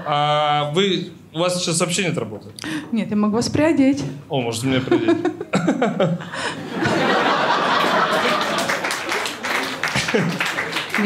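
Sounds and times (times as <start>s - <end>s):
audience laughing: 4.7s - 11.0s.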